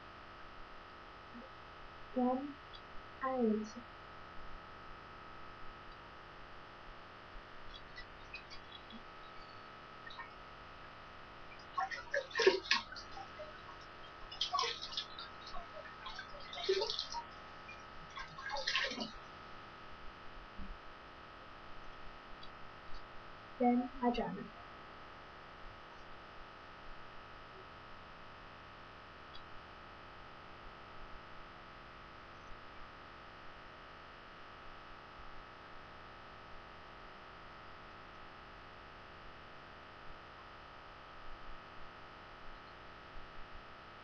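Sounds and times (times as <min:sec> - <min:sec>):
thin high whine: 0:00.0 - 0:33.9
low microphone hiss: 0:00.0 - 0:44.0
tiny faint sound: 0:05.7 - 0:24.8
water splashing in sink: 0:11.5 - 0:19.3.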